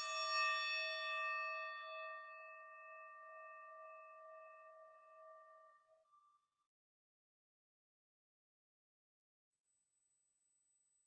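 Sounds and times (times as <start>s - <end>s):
singing bowl ringing: 0.0s - 6.5s.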